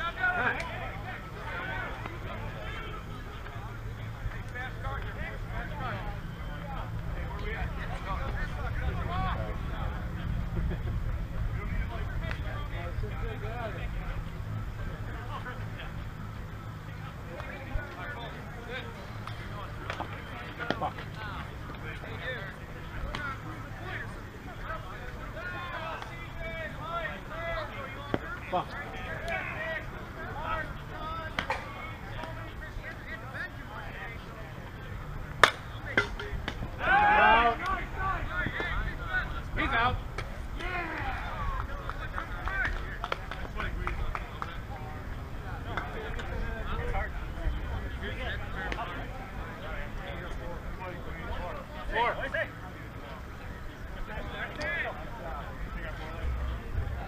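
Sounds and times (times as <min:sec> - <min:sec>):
players calling out: 0:00.0 - 0:57.0
sharp crack: 0:35.4 - 0:36.6
loud shout: 0:36.8 - 0:38.6.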